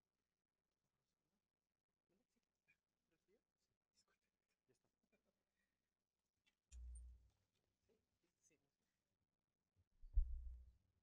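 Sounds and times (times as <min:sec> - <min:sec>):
faint indistinct voices: 0:02.1 - 0:05.8.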